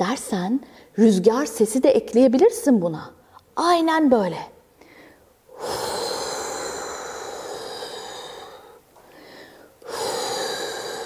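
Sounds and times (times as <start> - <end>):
woman blowing breathy whooshes: 5.5 - 11.0.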